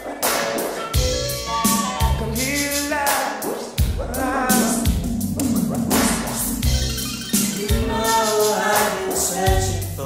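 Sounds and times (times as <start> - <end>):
deep heavy bass line: 1.0 - 3.2, 3.8 - 10.0
sharp percussion hits: 3.8 - 9.3.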